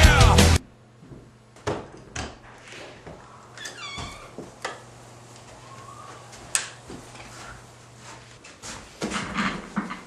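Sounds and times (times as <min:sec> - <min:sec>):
door hinge squeaking: 0:03.6 - 0:04.4.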